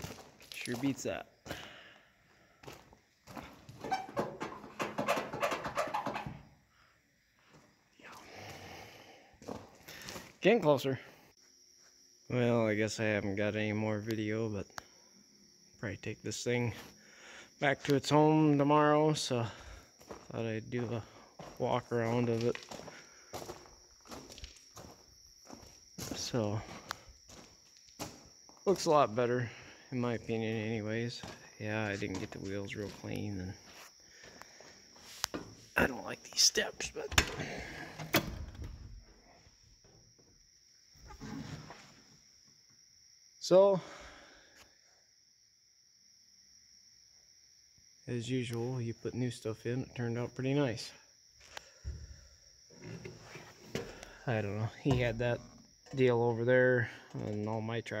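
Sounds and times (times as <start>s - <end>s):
faint footsteps on gravel: 0.0s - 1.7s, 2.5s - 3.8s, 19.5s - 29.0s, 30.2s - 35.4s
crickets chirring: 0.0s - 58.0s
rustling and shuffling: 31.1s - 35.8s, 51.4s - 54.2s.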